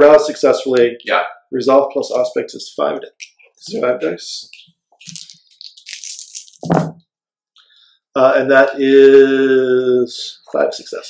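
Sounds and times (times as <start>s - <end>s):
dice rattling: 5.0s - 6.8s.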